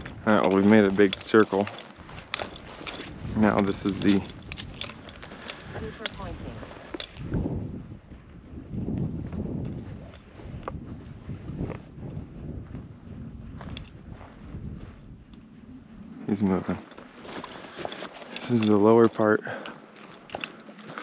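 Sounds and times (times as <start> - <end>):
brush rustling: 0.0 - 7.3, 13.5 - 21.0
footsteps through dry grass: 0.0 - 21.0
wind buffeting microphone: 0.0 - 21.0.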